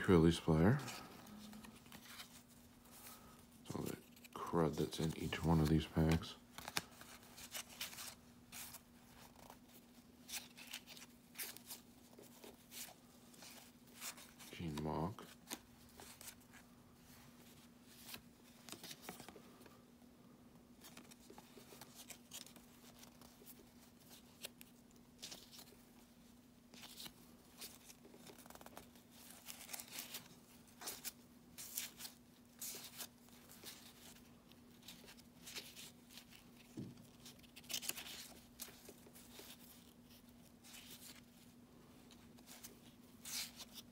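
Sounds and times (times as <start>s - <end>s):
cards flipping and sliding: 0.8s - 19.7s, 20.8s - 25.8s, 26.7s - 41.4s, 42.0s - 43.9s.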